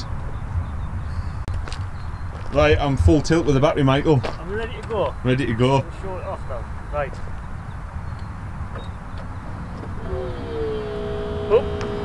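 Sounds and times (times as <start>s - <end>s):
pump motor whine: 9.8s - 12.0s.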